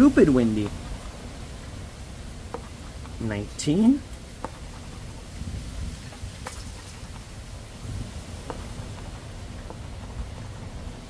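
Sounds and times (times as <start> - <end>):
wind on microphone: 0.0 - 11.0.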